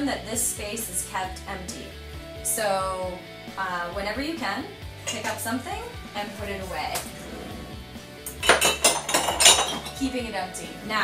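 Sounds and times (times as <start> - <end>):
dishes and cutlery clattering: 5.0 - 5.4, 8.3 - 10.1.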